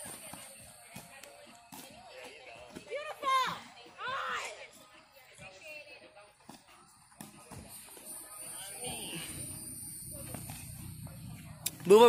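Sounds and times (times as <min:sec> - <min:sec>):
faint indistinct voices: 0:00.0 - 0:12.0.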